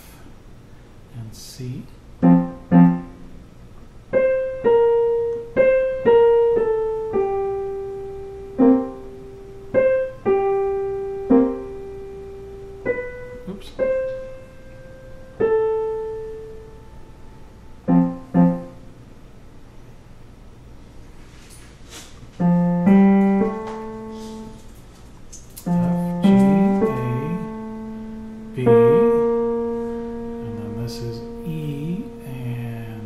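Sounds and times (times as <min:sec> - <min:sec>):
digital piano waltz: 0:02.2 - 0:18.9, 0:22.4 - 0:24.7, 0:25.6 - 0:33.0.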